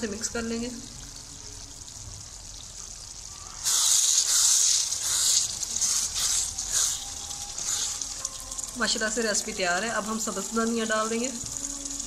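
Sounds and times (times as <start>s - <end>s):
curry simmering hiss: 0.0s - 12.0s
loud sizzling while stirring: 0.0s - 12.0s.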